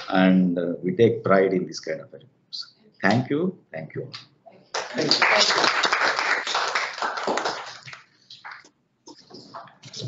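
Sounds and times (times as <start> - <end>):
people clapping: 4.7 - 8.7.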